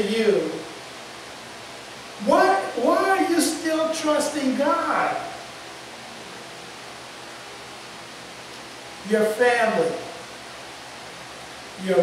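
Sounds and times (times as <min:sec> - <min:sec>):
steady background hiss: 0:00.0 - 0:12.0
man's voice: 0:02.2 - 0:05.3, 0:09.1 - 0:10.0.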